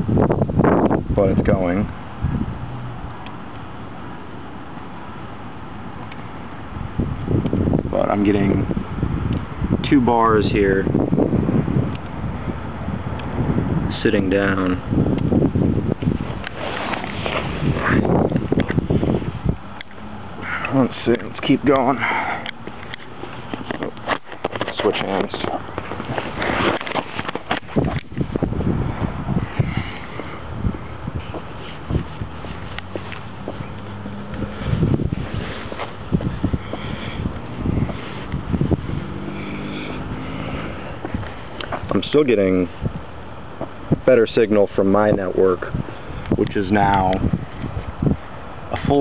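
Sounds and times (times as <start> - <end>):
wind on microphone: 0.0 - 3.2, 6.6 - 20.6, 22.0 - 49.0
vehicle engine hum: 0.0 - 49.0
microphone handling bumps: 14.9 - 19.8, 22.6 - 42.0
camera handling knocks and rubbing: 22.5 - 28.3.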